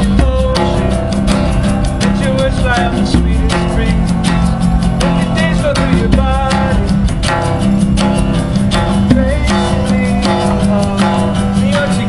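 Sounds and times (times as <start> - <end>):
man singing: 0.0 - 8.0, 8.7 - 12.0
acoustic guitar strummed: 0.0 - 12.0
djembe hand drum beat: 0.0 - 12.0.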